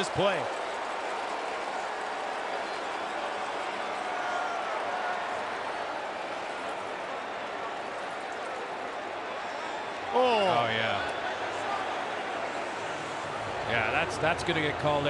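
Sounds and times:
stadium crowd noise: 0.0 - 15.0.

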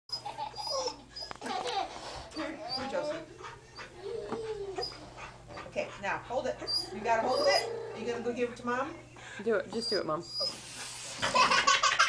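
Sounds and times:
dog whining: 0.1 - 1.4, 2.4 - 3.2, 3.8 - 5.2, 6.6 - 8.4, 9.8 - 10.7.

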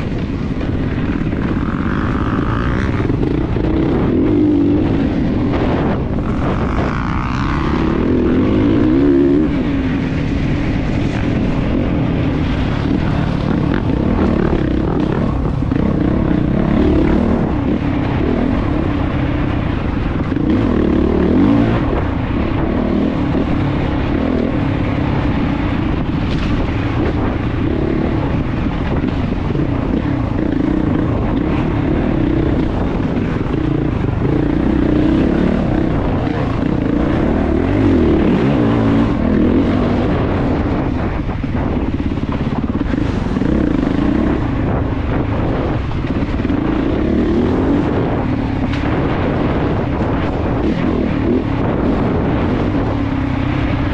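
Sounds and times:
dirt bike engine revving: 0.0 - 53.9.

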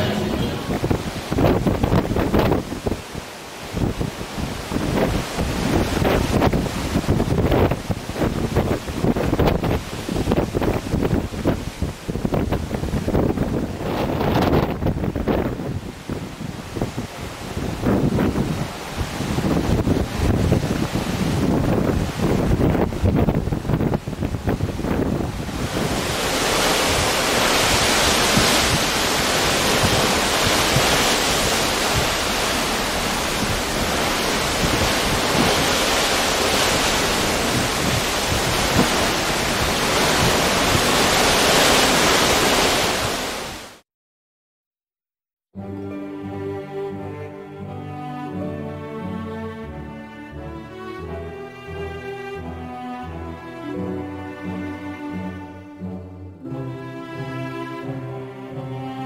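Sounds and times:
wind buffeting microphone: 0.0 - 43.6
sea rushing along ship: 0.0 - 43.8, 45.7 - 59.0.

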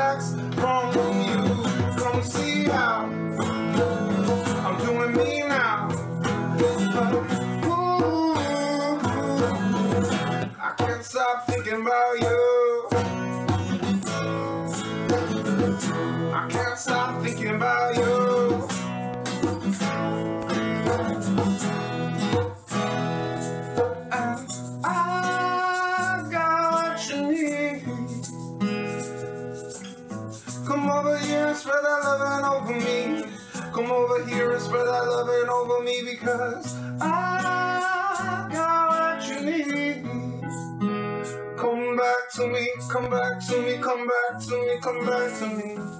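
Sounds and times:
man singing: 0.0 - 19.1, 24.0 - 29.7, 30.3 - 40.8, 41.6 - 45.9
hand shaker rattling: 0.0 - 41.4, 44.4 - 45.9
acoustic guitar strumming: 0.0 - 45.9.

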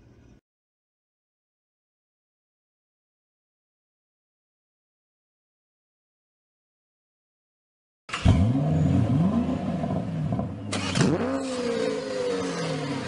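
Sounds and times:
car engine revving: 8.1 - 13.0.

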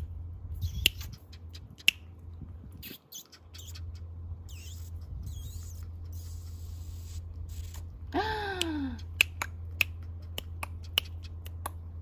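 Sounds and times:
steady low hum: 0.0 - 12.0
puppy squeaky whines: 2.8 - 6.6.

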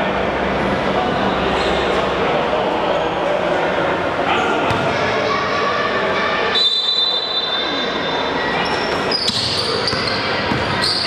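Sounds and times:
voices echoing: 0.0 - 11.0
basketball bouncing on court: 4.7 - 5.0, 9.2 - 11.0
shoe squeaks: 8.6 - 11.0.

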